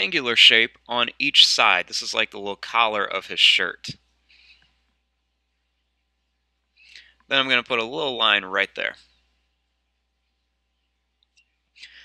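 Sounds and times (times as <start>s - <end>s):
faint hiss: 0.0s - 4.8s, 6.8s - 9.4s, 11.8s - 12.0s.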